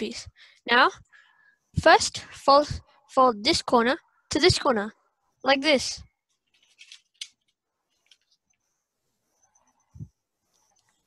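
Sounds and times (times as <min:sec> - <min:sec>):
paper crinkling: 0:06.3 - 0:08.5
paper rustling: 0:06.3 - 0:08.5.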